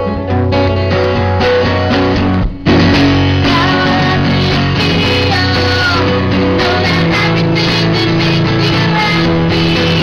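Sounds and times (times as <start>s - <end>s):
strummed acoustic guitar: 0.0s - 10.0s
woman singing: 3.4s - 10.0s.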